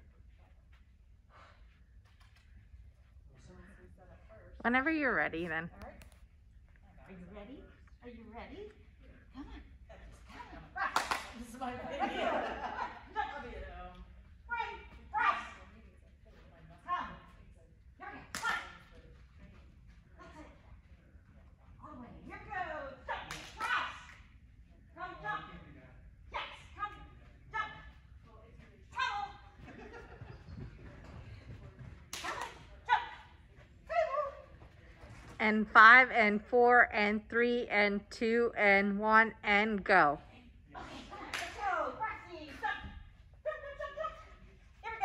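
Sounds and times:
sharp hand clap: 0:11.0 - 0:11.4.

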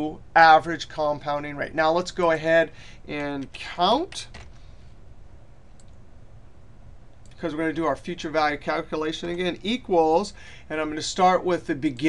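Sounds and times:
low hum of room noise: 0:00.0 - 0:12.0
faint computer mouse clicks: 0:05.8 - 0:06.0.

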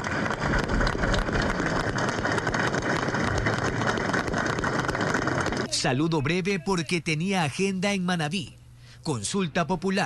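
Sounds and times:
crowd applauding: 0:00.0 - 0:05.7.

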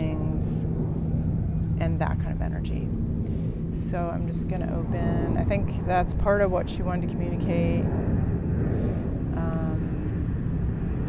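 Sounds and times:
airplane engine rumble overhead: 0:00.0 - 0:11.0.

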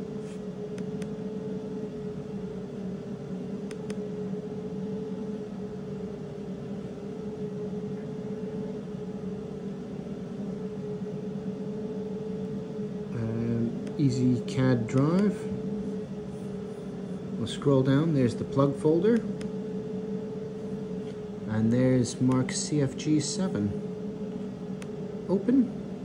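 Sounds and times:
machine hum with fan whir: 0:00.0 - 0:26.0.

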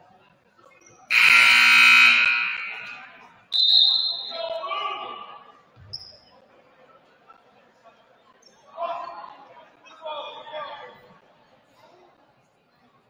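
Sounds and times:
scoreboard buzzer: 0:01.1 - 0:03.2.

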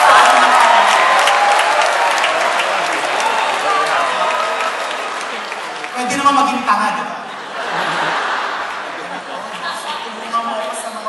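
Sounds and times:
audience applauding: 0:00.0 - 0:06.5, 0:07.6 - 0:11.0.

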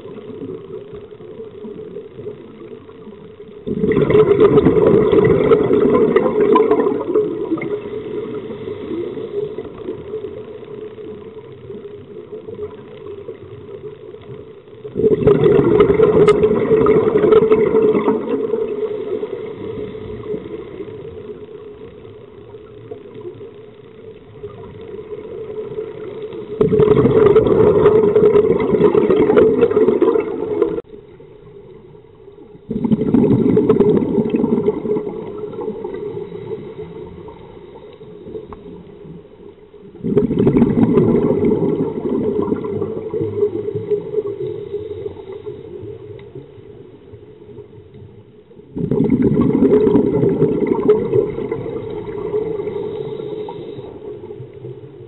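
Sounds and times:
quiet steady hiss: 0:00.0 - 0:55.0
underwater exhaust bubble bursts: 0:00.0 - 0:55.0.

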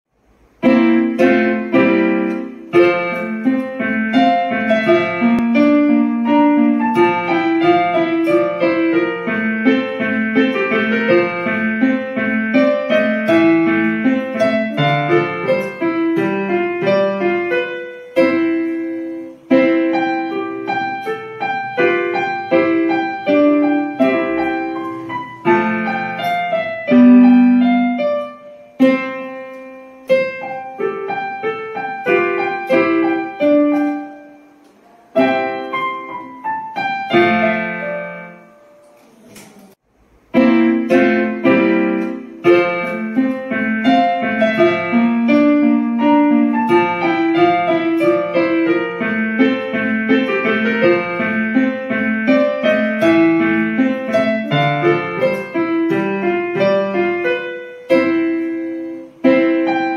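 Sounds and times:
solo piano music: 0:00.1 - 0:59.9.

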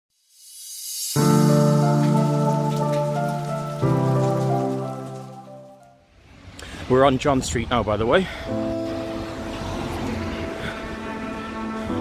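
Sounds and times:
steady high hiss: 0:00.1 - 0:04.2.

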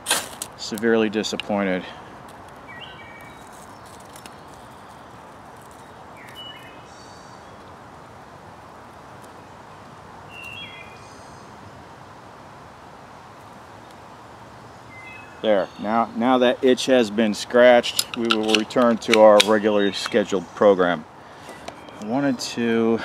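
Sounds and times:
small fire crackling: 0:00.0 - 0:06.7
steady woodland hiss: 0:00.0 - 0:23.0
bird chirping: 0:02.7 - 0:05.2, 0:05.8 - 0:07.8, 0:10.3 - 0:11.5, 0:14.8 - 0:23.0.

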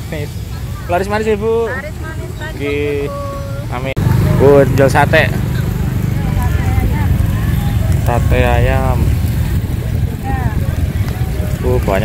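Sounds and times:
street noise: 0:00.0 - 0:12.0
wind buffeting microphone: 0:01.8 - 0:12.0.

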